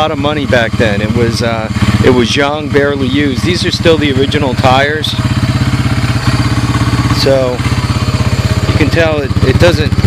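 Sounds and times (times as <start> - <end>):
atv engine idling: 0.0 - 10.0.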